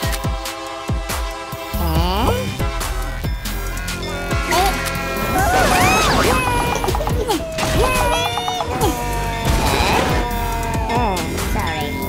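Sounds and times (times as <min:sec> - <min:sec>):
background music: 0:00.0 - 0:12.0
gliding cartoon sound effects: 0:04.1 - 0:10.2.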